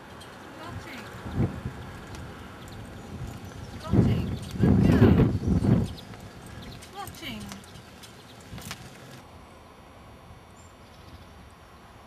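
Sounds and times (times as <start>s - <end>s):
cart rolling along a road: 0.0s - 9.3s
llama hooves clip-clopping: 0.1s - 9.2s.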